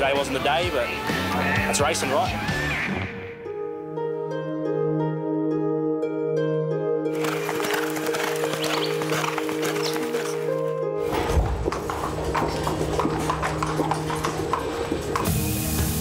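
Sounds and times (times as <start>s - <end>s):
background music sustained tones: 0.0s - 16.0s
horse hoofbeats: 7.1s - 16.0s
hose spraying water: 14.4s - 16.0s.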